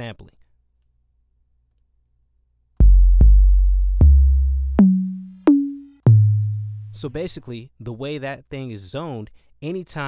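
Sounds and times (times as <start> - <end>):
synth bass notes: 2.8 - 7.0.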